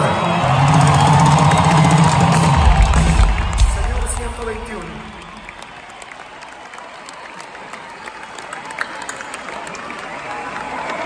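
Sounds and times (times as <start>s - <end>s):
crowd cheering: 0.0s - 11.0s
live rock band playing: 0.4s - 5.6s
deep bass rumble: 0.5s - 5.6s.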